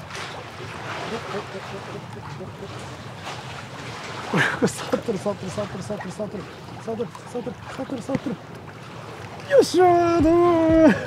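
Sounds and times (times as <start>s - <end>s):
sea water washing against a wall: 0.0s - 11.0s
seaside wind: 0.0s - 11.0s.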